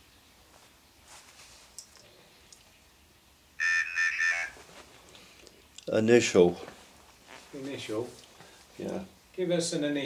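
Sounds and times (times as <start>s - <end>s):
tinny synthesized voice speaking: 3.6s - 4.6s.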